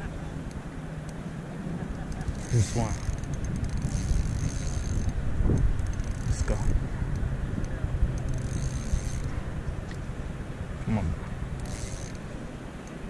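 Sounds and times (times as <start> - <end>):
wind and water rumble: 0.0 - 13.0
fishing reel clicking and whirring: 2.1 - 6.8, 8.2 - 9.3, 11.6 - 12.2.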